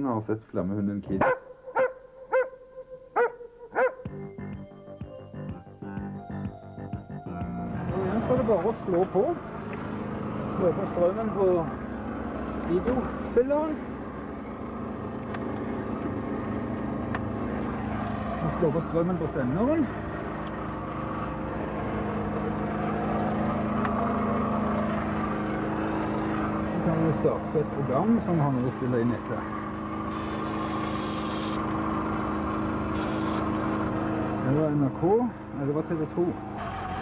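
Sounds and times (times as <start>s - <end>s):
low mechanical hum: 6.3s - 37.0s.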